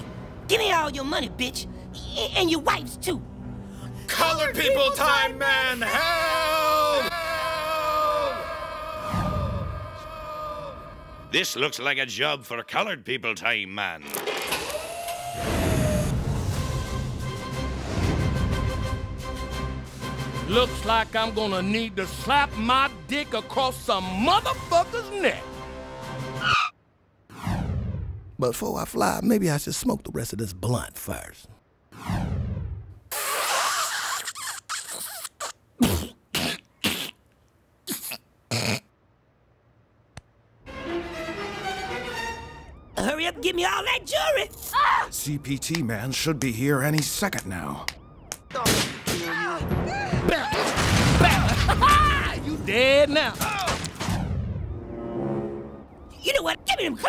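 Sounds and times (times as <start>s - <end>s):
low dramatic music: 0.0s - 11.9s, 15.4s - 26.6s, 40.6s - 44.2s, 53.9s - 57.0s
person coughing harshly: 35.8s - 37.2s, 37.9s - 38.9s.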